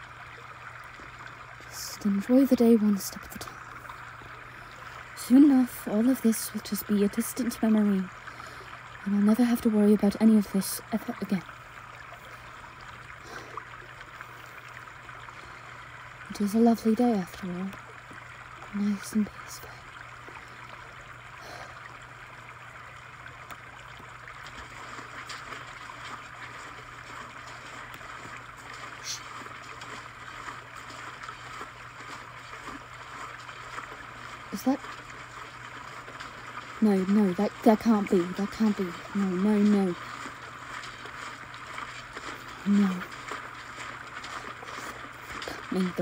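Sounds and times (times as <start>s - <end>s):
stream running over stones: 0.0s - 46.0s.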